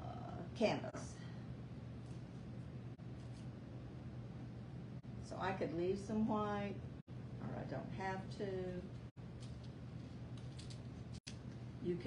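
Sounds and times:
paper tearing and rustling: 0:10.4 - 0:11.0.

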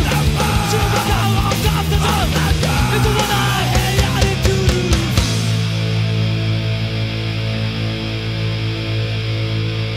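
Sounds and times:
distorted electric guitar chord ringing: 0:00.0 - 0:09.9.

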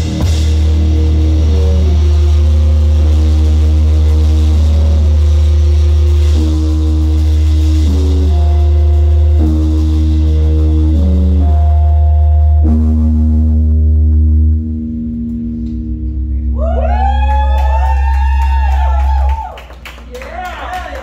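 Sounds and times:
loud low bass drone: 0:00.0 - 0:19.6
sustained band chords: 0:00.0 - 0:21.0.

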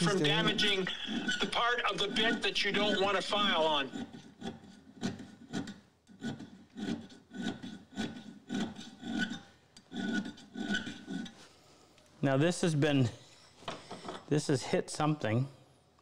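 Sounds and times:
file rubbing on steel edge: 0:00.0 - 0:11.5.

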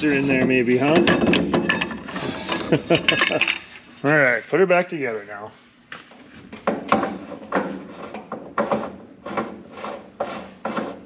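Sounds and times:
metal clicks and knocks: 0:00.8 - 0:03.6.

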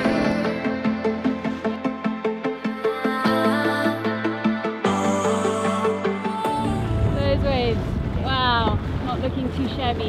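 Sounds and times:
background music: 0:00.0 - 0:10.0
boat motor running: 0:06.4 - 0:10.0
wind buffeting microphone: 0:06.8 - 0:10.0.

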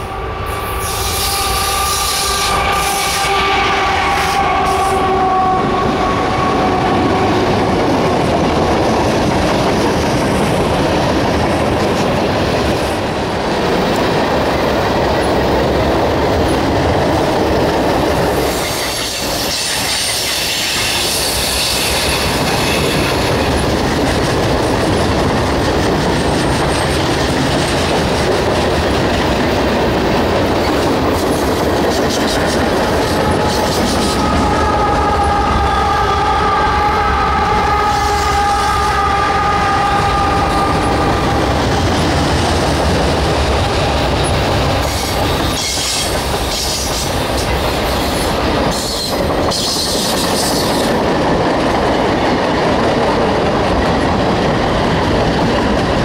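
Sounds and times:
diesel locomotive drone: 0:00.0 - 0:56.0.

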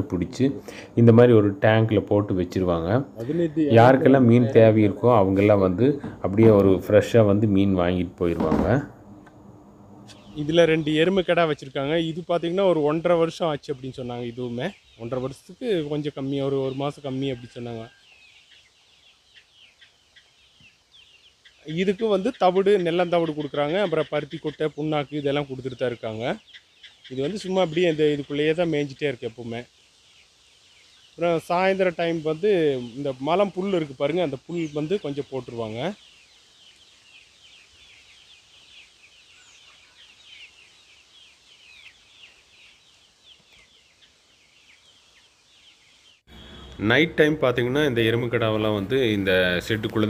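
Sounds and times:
birds chirping faintly: 0:00.0 - 0:50.0
faint outdoor hiss: 0:00.0 - 0:50.0.

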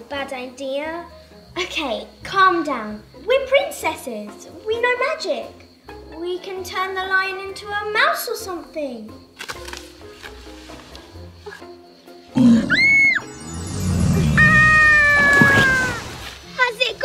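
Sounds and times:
soft background music: 0:00.0 - 0:17.0
lion roar effect: 0:12.3 - 0:15.6.

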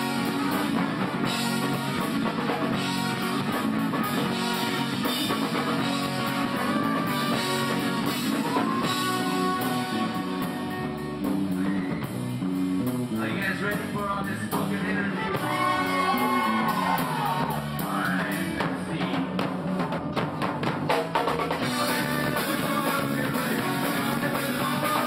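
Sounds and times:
ska band playing: 0:00.0 - 0:25.0.

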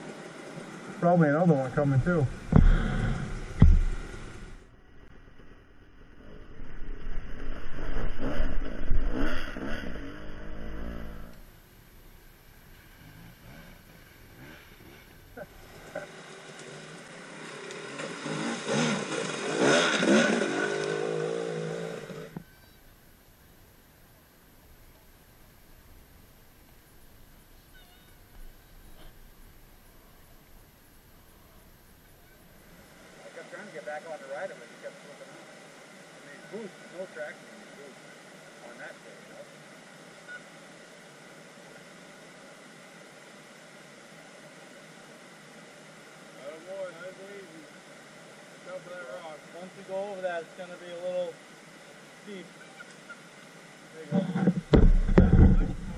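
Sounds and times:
dirt bike engines revving: 0:00.0 - 0:04.6, 0:07.5 - 0:11.5, 0:12.6 - 0:22.5.

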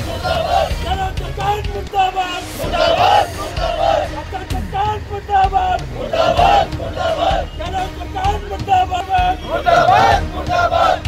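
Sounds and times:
men shouting slogans together: 0:00.0 - 0:11.0.

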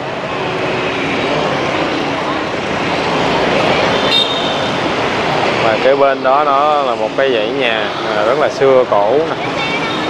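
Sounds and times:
motorbikes and cars passing: 0:00.0 - 0:10.0.

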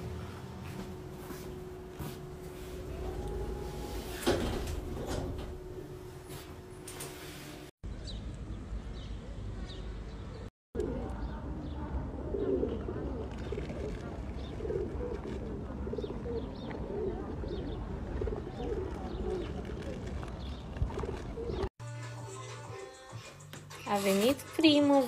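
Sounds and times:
pigeons cooing: 0:12.0 - 0:21.7.

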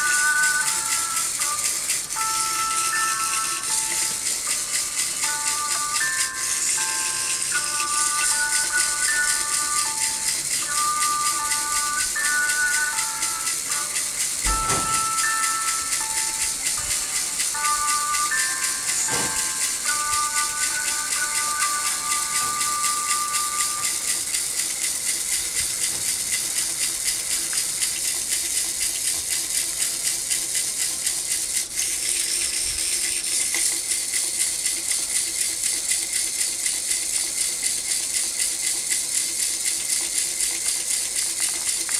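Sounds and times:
toy caterpillar motor rattling: 0:00.0 - 0:41.9.

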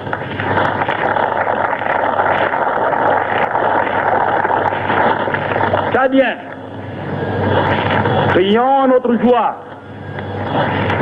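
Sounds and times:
large crowd applauding: 0:00.1 - 0:06.0.

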